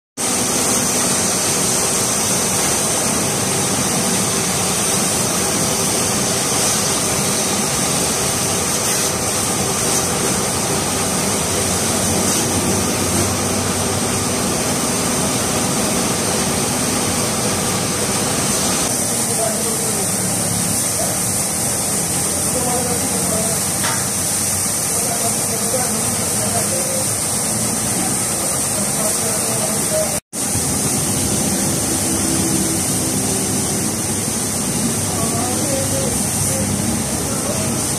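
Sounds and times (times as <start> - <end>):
hose water spraying: 0.2 - 37.9.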